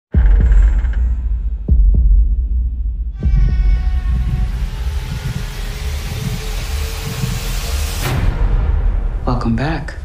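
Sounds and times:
pulsing low bass: 0.2s - 9.2s
rushing hissing riser: 3.8s - 8.2s.

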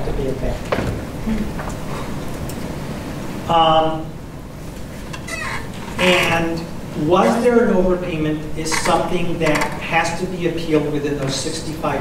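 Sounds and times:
low room noise: 0.0s - 12.0s
squeaky chair moving: 5.0s - 6.6s, 8.6s - 9.9s.

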